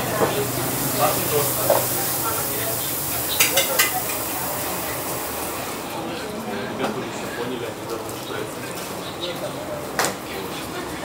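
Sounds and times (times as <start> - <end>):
wok sizzling: 0.0 - 6.7.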